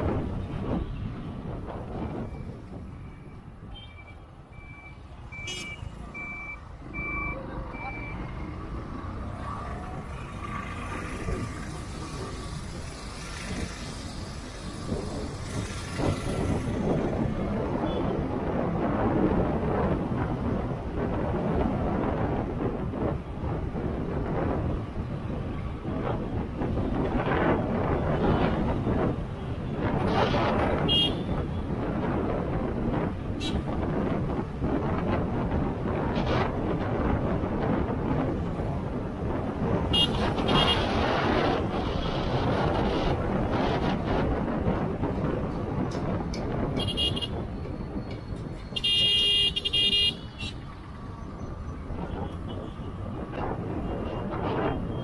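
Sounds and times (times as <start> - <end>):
wind buffeting microphone: 0.0 - 3.7, 7.7 - 55.0
road and traffic noise: 0.0 - 55.0
short electronic beeps: 2.3 - 8.3.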